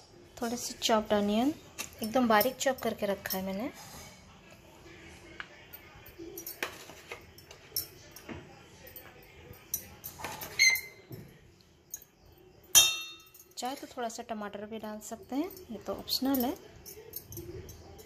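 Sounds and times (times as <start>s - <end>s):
metal spoon scraping steel bowl: 10.1s - 11.0s.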